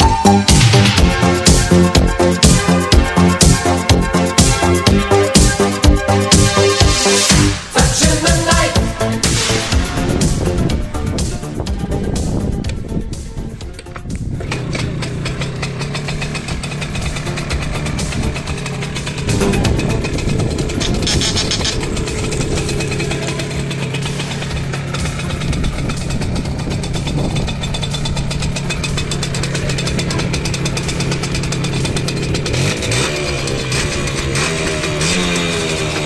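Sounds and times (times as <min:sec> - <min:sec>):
moped two-stroke engine running: 0:00.0 - 0:11.2, 0:13.6 - 0:36.0.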